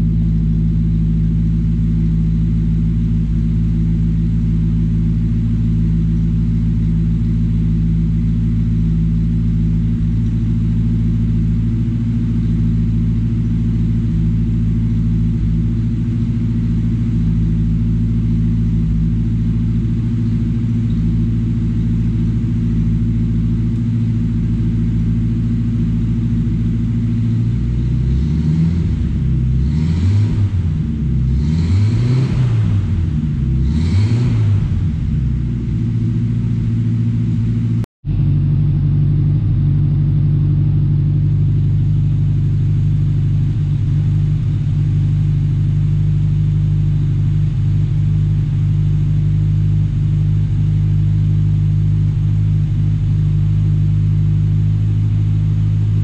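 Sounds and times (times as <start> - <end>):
car engine revving and idling: 0.0 - 56.0.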